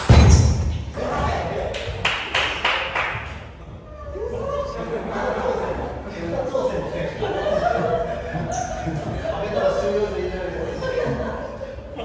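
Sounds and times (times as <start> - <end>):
sharp hand claps: 1.7 - 3.5.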